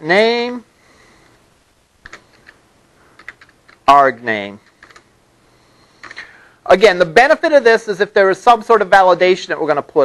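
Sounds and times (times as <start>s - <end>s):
computer keyboard typing: 2.0s - 3.9s, 4.6s - 5.1s.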